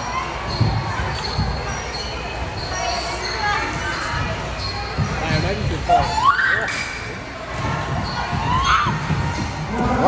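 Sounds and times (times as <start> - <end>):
voices in echoing hall: 0.0 - 10.0.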